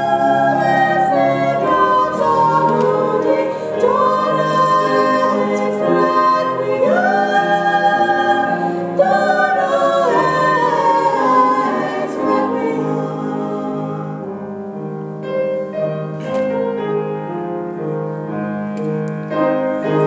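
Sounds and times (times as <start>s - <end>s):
female choir singing in harmony: 0.0s - 14.9s.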